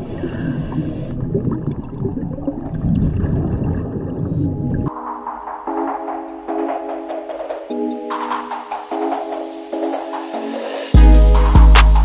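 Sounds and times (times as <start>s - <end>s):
underwater breathing and bubbles: 0.0s - 4.9s.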